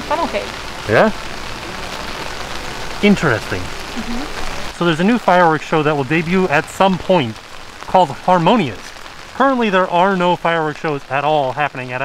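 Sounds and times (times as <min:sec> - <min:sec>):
rain falling on wet pavement: 0:00.0 - 0:12.0.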